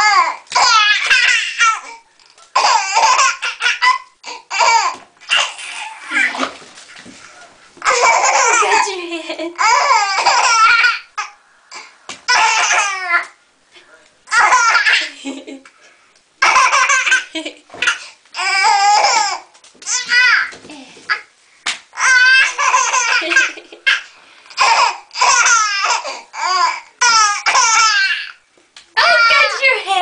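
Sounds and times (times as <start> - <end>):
baby laughing: 0.0 - 6.6, 7.8 - 11.4, 12.3 - 13.3, 14.3 - 15.6, 16.4 - 21.3, 22.0 - 28.4.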